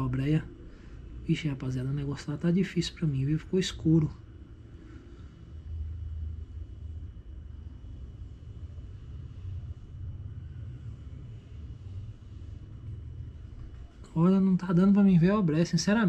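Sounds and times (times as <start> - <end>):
low outdoor rumble: 0.0 - 16.0.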